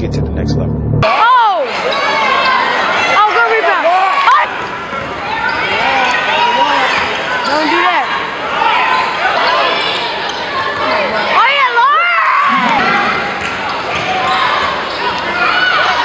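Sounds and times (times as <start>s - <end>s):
players and crowd calling: 1.0s - 16.0s.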